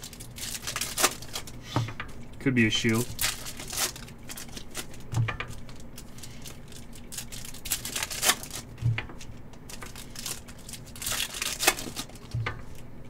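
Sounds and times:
foil wrapper tearing and crinkling: 0.0 - 1.6, 2.7 - 12.8.

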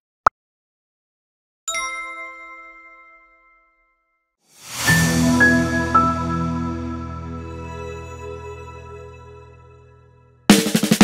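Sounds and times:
notification bell ding: 1.7 - 4.2.

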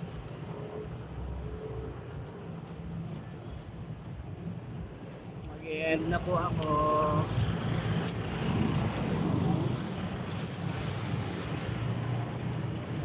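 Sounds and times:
cars running: 0.0 - 13.0.

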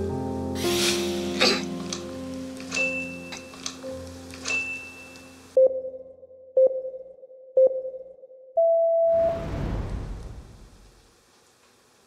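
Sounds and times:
high steady beep: 4.5 - 9.2.

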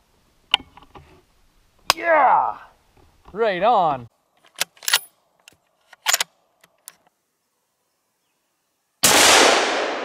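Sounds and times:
rifle bolt clicks and rattles: 4.4 - 7.1.

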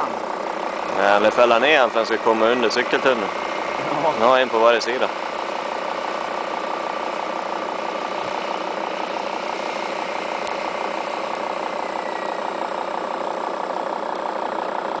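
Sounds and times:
steady engine hum: 0.0 - 15.0.

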